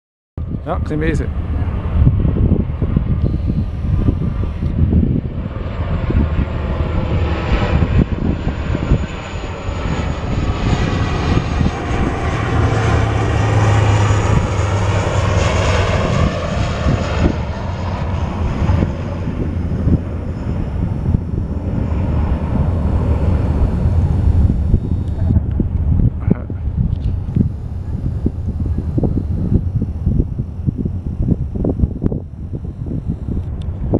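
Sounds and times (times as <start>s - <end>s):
turboprop airliner passing low: 0.4s - 33.9s.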